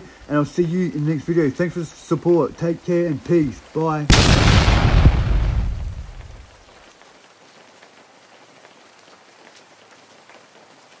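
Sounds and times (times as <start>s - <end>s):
faint steady rain: 0.0s - 11.0s.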